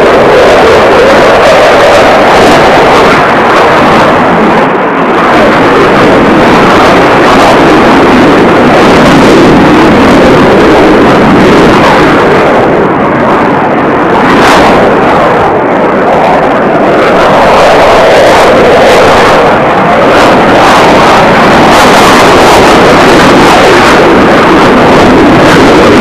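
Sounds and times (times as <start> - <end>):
jet engine roar: 0.0 - 26.0.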